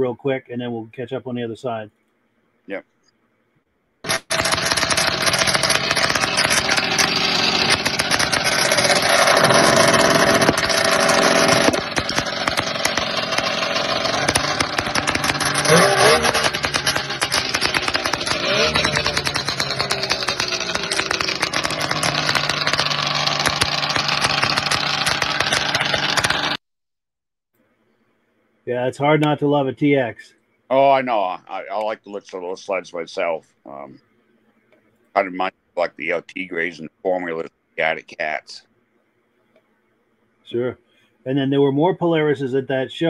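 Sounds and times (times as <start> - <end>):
snowmobile engine running: 4.1 - 26.6.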